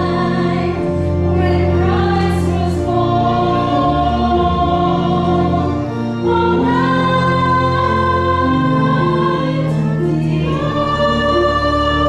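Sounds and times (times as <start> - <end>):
women singing a hymn: 0.0 - 12.0.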